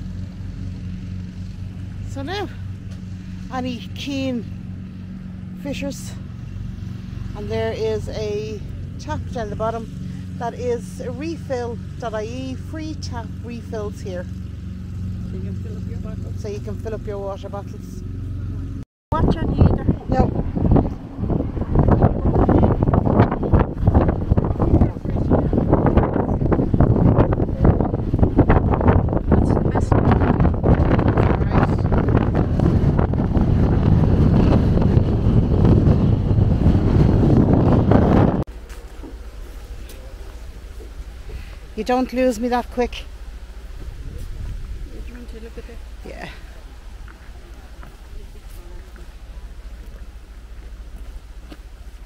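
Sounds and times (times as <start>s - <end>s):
engine idling: 0.0s - 52.0s
wind buffeting microphone: 0.0s - 52.0s.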